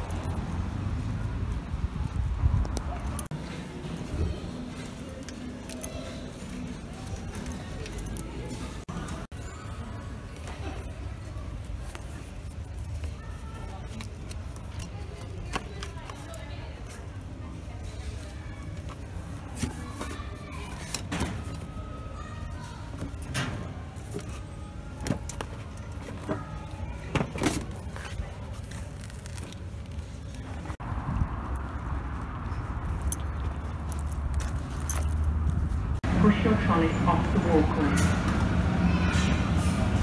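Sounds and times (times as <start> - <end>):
traffic rumble: 0.0 - 40.0.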